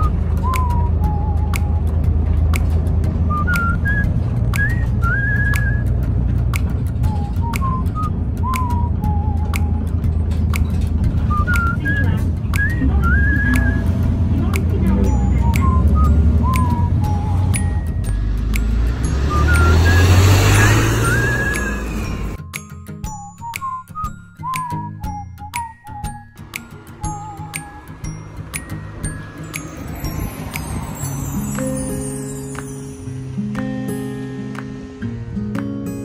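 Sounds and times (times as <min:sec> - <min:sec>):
whistled tune: 0:00.0 - 0:02.2, 0:03.2 - 0:06.1, 0:06.8 - 0:14.2, 0:14.8 - 0:33.0
bus rumbling: 0:00.0 - 0:22.4, 0:24.4 - 0:36.0
background music with high melody: 0:00.0 - 0:36.0.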